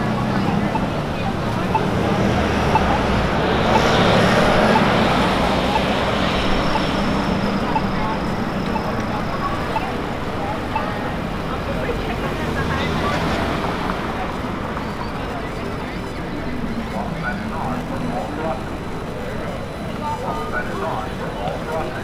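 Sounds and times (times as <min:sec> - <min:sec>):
chatter of pedestrians: 0:00.0 - 0:22.0
traffic passing: 0:00.0 - 0:22.0.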